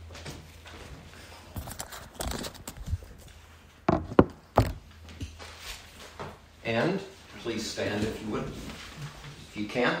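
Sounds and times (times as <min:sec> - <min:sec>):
thumps and knocks: 0:03.9 - 0:04.8.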